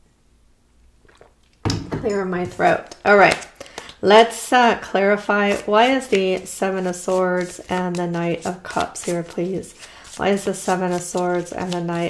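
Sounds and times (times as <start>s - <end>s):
woman speaking: 1.9s - 12.0s.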